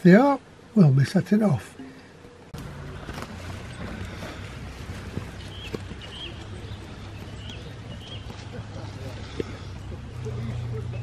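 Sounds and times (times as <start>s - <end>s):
bird chirping faintly: 1.7s - 11.0s.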